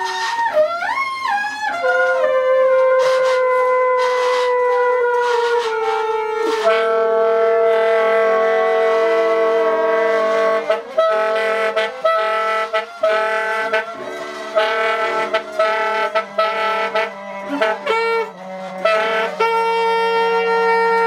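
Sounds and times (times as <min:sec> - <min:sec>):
bowed double bass: 0:00.0 - 0:21.0
tenor saxophone: 0:00.0 - 0:21.0
trumpet: 0:00.0 - 0:21.0.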